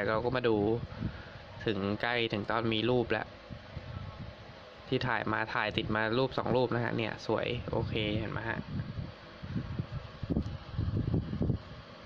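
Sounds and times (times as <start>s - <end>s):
wind buffeting microphone: 0.0s - 1.6s, 3.4s - 4.6s, 5.6s - 11.8s.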